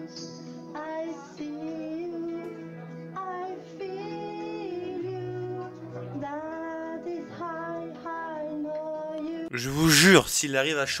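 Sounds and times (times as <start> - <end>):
backing track music: 0.0 - 10.2.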